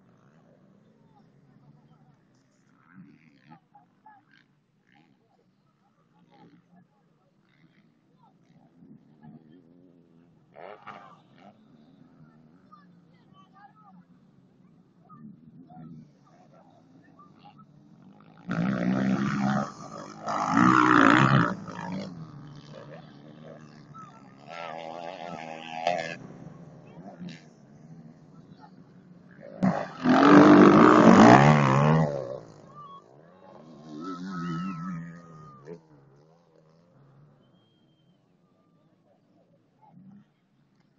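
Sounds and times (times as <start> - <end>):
distant motorcycle engines: 0.0 - 40.9
motorcycle engine revving: 14.0 - 38.1.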